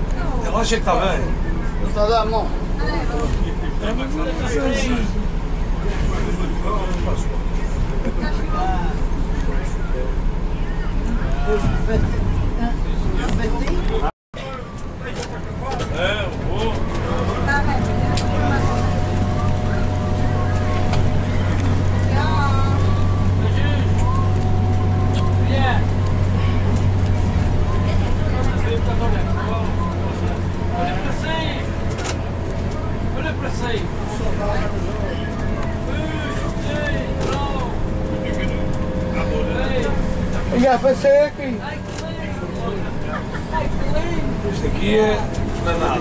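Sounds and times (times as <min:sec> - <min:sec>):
bus engine running: 0:00.0 - 0:46.0
passengers talking: 0:00.0 - 0:46.0
road noise: 0:00.0 - 0:46.0.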